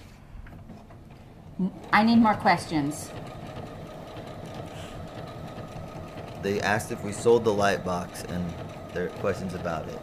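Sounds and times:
sewing machine running: 1.2 - 10.0.

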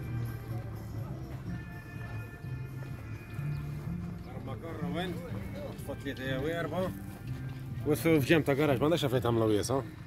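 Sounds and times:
people talking: 4.1 - 7.0, 7.8 - 9.9.

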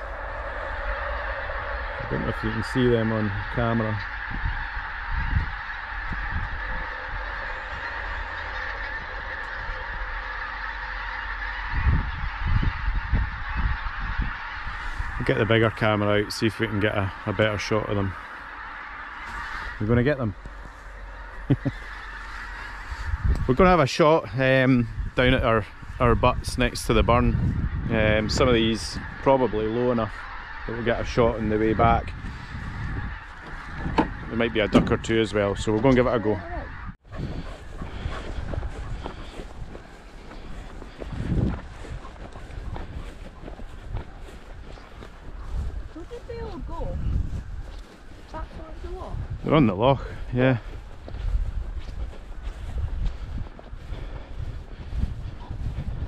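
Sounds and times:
low rumbles: 0.0 - 29.3
geese honking in flight: 0.0 - 56.0.

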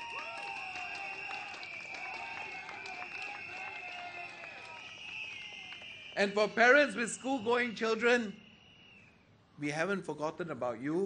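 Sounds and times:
scattered clapping: 0.0 - 6.2.

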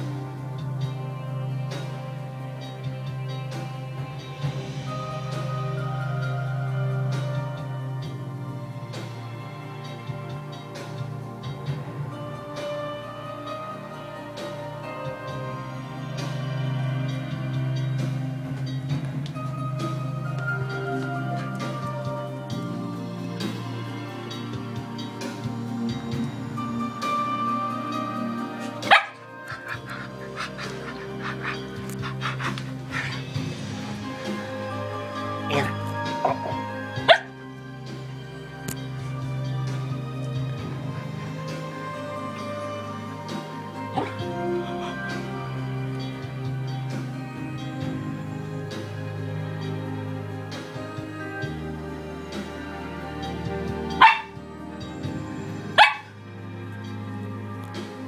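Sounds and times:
background music: 0.0 - 58.0
dog barking: 28.8 - 33.2, 35.5 - 37.3, 44.0 - 44.2, 54.0 - 54.3, 55.8 - 56.1.

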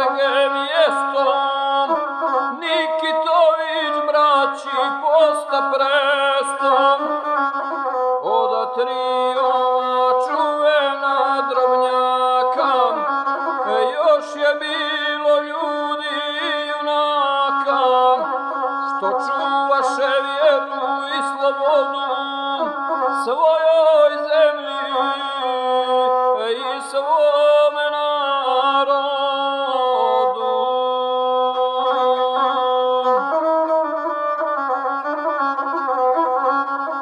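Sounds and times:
bowed folk fiddle melody: 0.0 - 37.0
man chanting verse: 8.4 - 32.8.

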